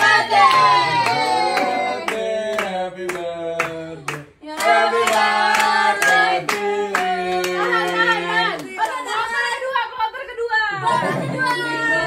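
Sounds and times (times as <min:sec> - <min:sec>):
people clapping in time: 0:00.0 - 0:09.1
group singing a birthday song: 0:00.0 - 0:09.6.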